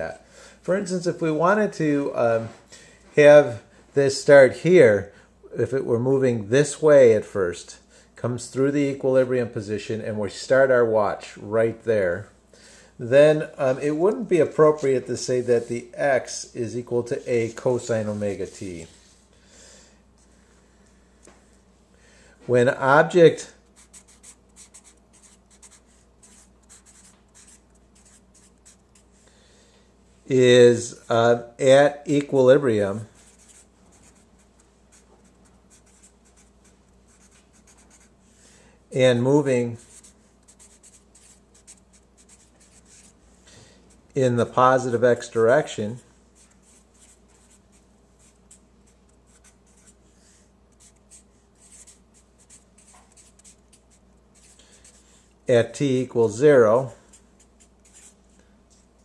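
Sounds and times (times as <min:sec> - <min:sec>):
low steady hum: 0:00.0 - 0:59.0
marker writing on paper: 0:23.8 - 0:29.1, 0:33.2 - 0:38.1, 0:39.8 - 0:43.2, 0:46.4 - 0:50.0, 0:50.7 - 0:55.0, 0:57.1 - 0:58.2.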